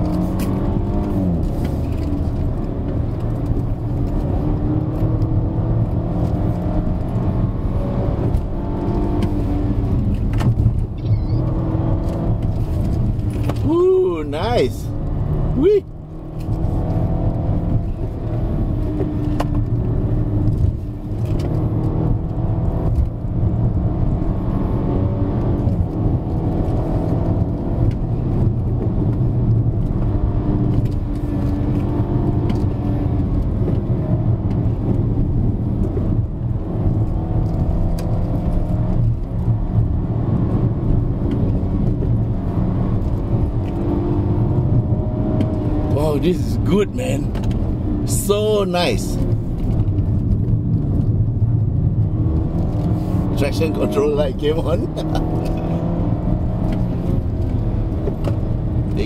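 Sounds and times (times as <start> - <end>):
car engine under load: 0.0 - 59.0
road and tyre noise: 0.0 - 59.0.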